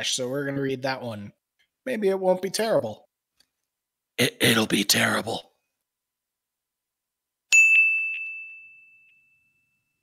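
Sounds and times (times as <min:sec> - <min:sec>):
bright bell ding: 0:07.5 - 0:10.0.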